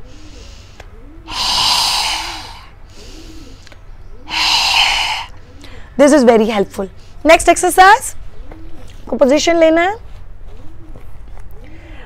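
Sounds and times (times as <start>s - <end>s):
breathing in through nose: 0.0s - 5.9s
woman exhaling forcefully: 1.3s - 3.2s, 4.3s - 5.4s.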